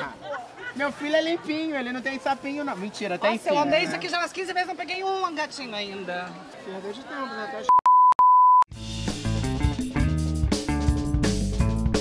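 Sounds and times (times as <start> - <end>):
high test tone beep: 7.7 - 8.7
band music with drums and bass: 8.7 - 12.0.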